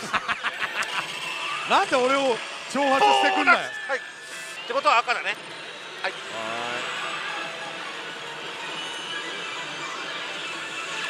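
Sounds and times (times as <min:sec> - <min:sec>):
din of gaming machines: 0:00.0 - 0:11.0.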